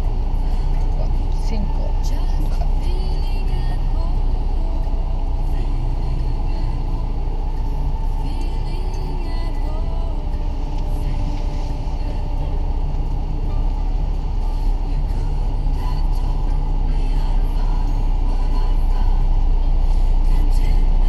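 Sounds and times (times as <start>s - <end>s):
car engine rumble: 0.0s - 21.0s
road noise inside car: 0.0s - 21.0s.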